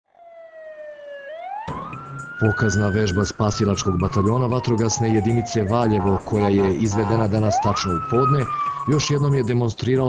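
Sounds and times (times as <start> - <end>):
fire engine siren wailing: 0.1 - 9.6.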